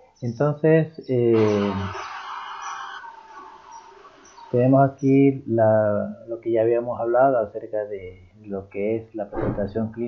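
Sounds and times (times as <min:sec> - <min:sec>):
faint bird chirps: 0:00.0 - 0:06.5.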